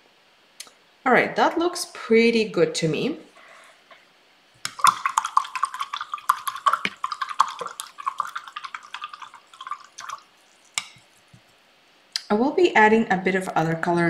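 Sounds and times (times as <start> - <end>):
small splashes: 4.6 - 11.5
paintbrush clinking in water cup: 4.7 - 11.2.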